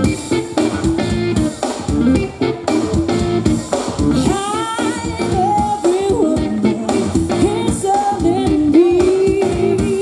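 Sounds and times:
pop-country band playing: 0:00.0 - 0:10.0.

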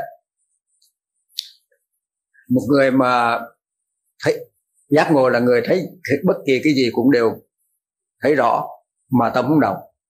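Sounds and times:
man speaking: 0:00.0 - 0:00.3, 0:02.4 - 0:07.6, 0:08.2 - 0:10.0.

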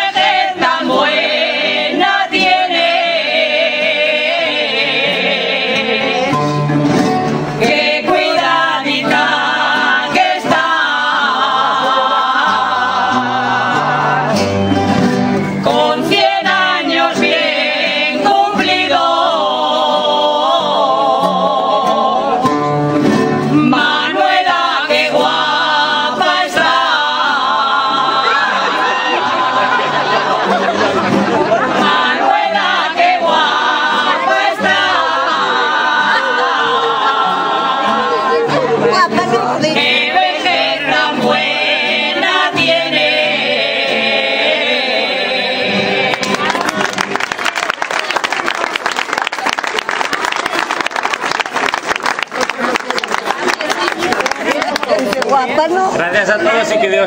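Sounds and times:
crowd singing long notes: 0:00.0 - 0:51.8
voices: 0:23.6 - 0:51.1, 0:51.8 - 0:57.0
crowd applauding: 0:46.0 - 0:55.7
hands clapping close by: 0:46.1 - 0:55.4.

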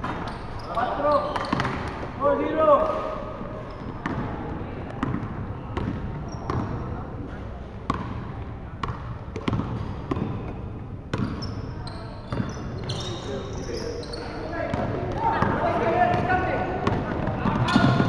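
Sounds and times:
sneaker squeaks on floor: 0:00.0 - 0:02.1, 0:03.6 - 0:04.2, 0:06.1 - 0:06.9, 0:09.4 - 0:16.2, 0:17.5 - 0:18.0
basketball bouncing on hardwood floor: 0:08.8 - 0:10.4
players shouting: 0:14.6 - 0:18.0.

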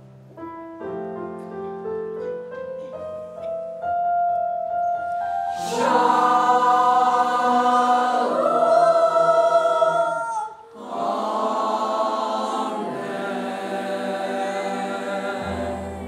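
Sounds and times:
mixed choir singing: 0:05.5 - 0:16.0.

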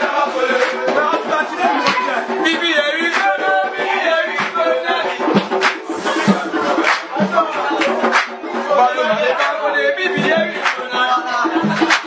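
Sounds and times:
sharp percussive stroke: 0:00.0 - 0:08.7
percussion accompaniment: 0:00.0 - 0:12.0
voices singing: 0:00.0 - 0:12.0.

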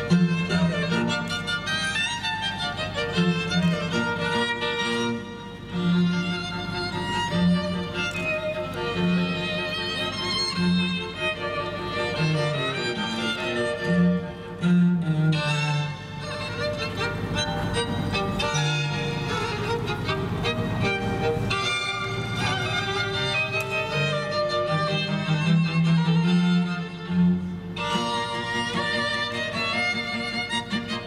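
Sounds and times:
cello low notes: 0:00.0 - 0:31.0
string quartet playing: 0:00.0 - 0:31.0.

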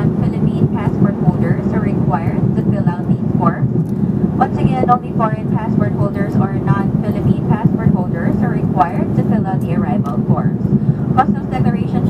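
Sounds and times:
people talking: 0:00.0 - 0:03.7, 0:04.4 - 0:12.0
airliner engine and airflow noise: 0:00.0 - 0:12.0.

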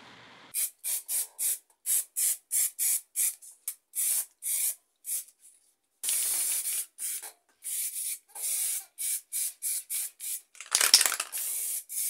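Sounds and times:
spray paint can hissing: 0:00.6 - 0:03.4, 0:04.0 - 0:05.3, 0:06.0 - 0:12.0.

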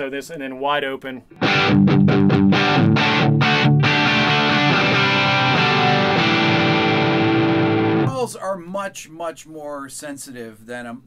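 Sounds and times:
overdriven electric guitar chords: 0:01.4 - 0:08.1.

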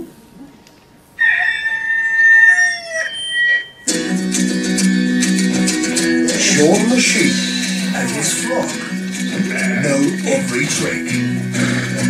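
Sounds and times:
rooster crowing: 0:01.2 - 0:03.9
guitar-led music: 0:03.8 - 0:12.0.

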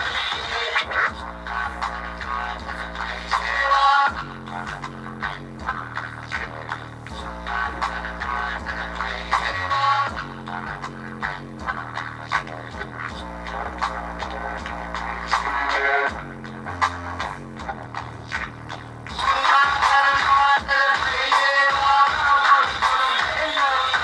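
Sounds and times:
electronic music with deep bass: 0:00.0 - 0:24.0.

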